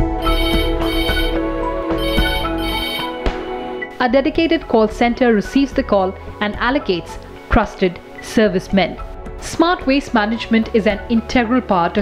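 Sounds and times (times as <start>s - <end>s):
background music with bass: 0.0s - 12.0s
telephone ringing electronic trill: 0.2s - 1.4s, 2.0s - 3.2s.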